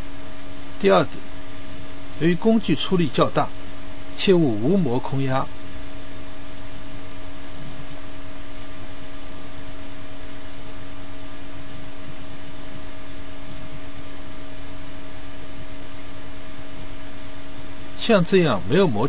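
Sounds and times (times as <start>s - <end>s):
steady hum: 0.0s - 19.0s.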